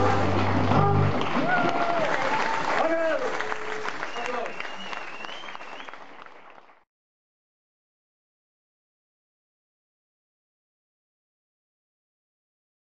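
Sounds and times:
audience applauding and cheering: 0.0 - 6.9
shouts: 0.7 - 4.5
whistle: 4.0 - 6.1.

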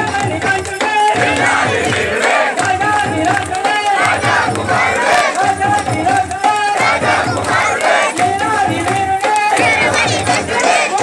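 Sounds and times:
hand claps: 0.0 - 11.0
crowd chanting in unison: 1.1 - 11.0.

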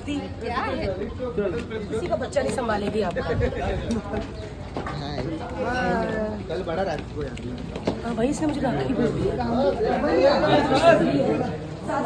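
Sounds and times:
people talking over one another: 0.0 - 12.0.

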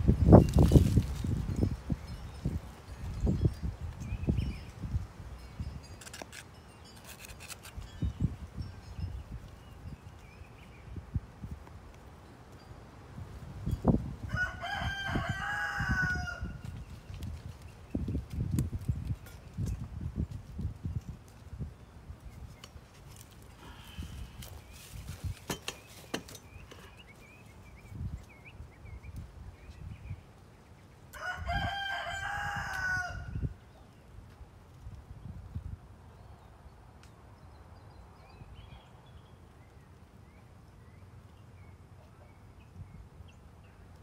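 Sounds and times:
rooster crowing: 14.2 - 16.6, 31.1 - 33.5.

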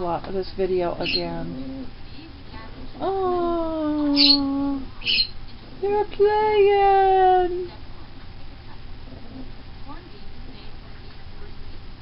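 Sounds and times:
faint room noise: 0.0 - 12.0
small dog whining: 3.8 - 5.3.

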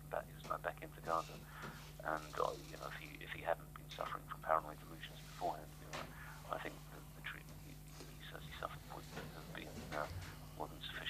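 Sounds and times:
quiet indistinct speech: 0.0 - 11.0
steady low hum: 0.0 - 11.0.

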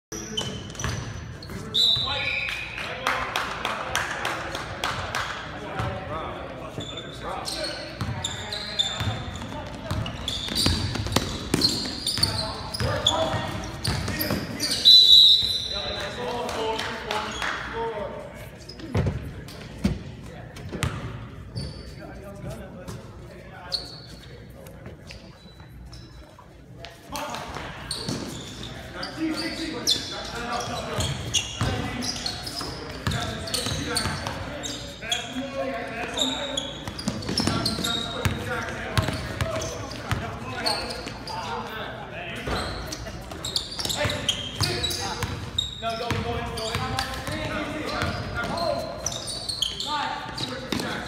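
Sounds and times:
sneakers squeaking: 0.1 - 2.8, 5.8 - 17.7, 18.4 - 51.0.

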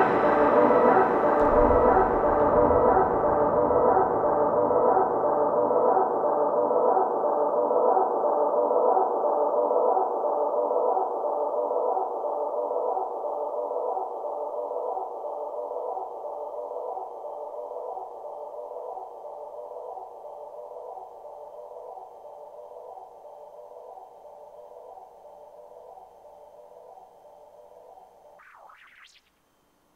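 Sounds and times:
electric guitar ambient drone: 0.0 - 6.5.

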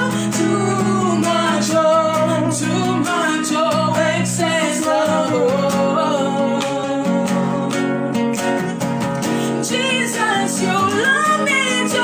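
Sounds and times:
man and woman singing: 0.0 - 8.3, 9.3 - 12.0
strummed acoustic guitar: 0.0 - 12.0.

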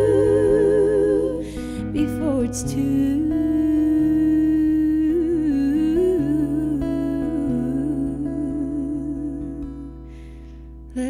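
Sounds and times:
woman singing with vibrato: 0.0 - 10.1
acoustic guitar chords: 0.0 - 11.0.

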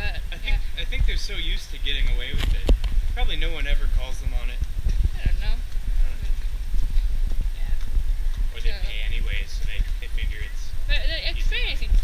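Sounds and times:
wind rumble on microphone: 0.0 - 12.0
footsteps on paved street: 2.0 - 10.5.

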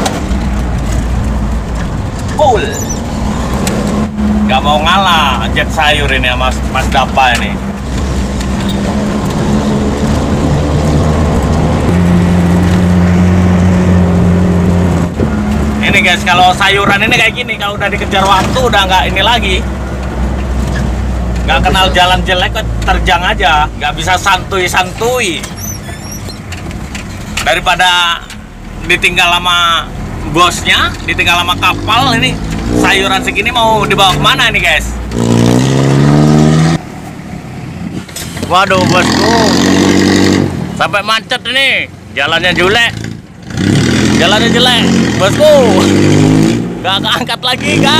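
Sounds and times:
vehicle engine humming: 0.0 - 47.9.

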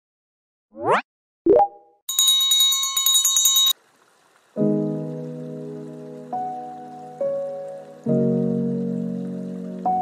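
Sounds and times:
rapid bell ringing: 2.1 - 3.8.

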